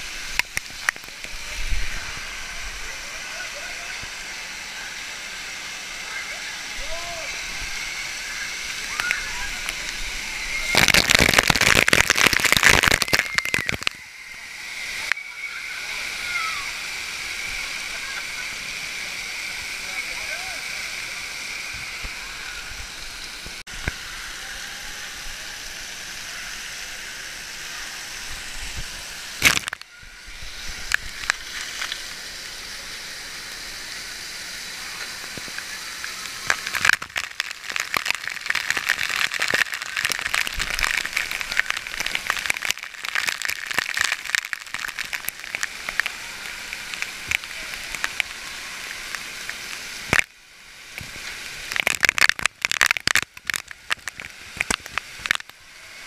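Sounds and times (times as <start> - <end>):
water rushing: 0.0 - 56.0
sharp cracks: 10.6 - 14.0, 29.4 - 29.9, 36.4 - 46.2, 51.7 - 55.5.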